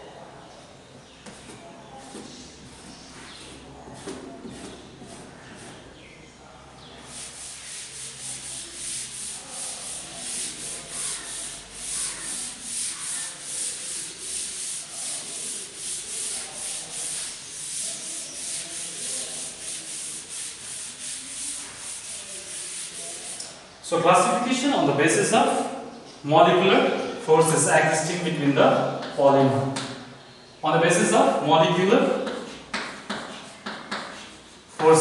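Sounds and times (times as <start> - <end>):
duster scrubbing chalkboard: 1.3 - 5.9, 7.0 - 23.6.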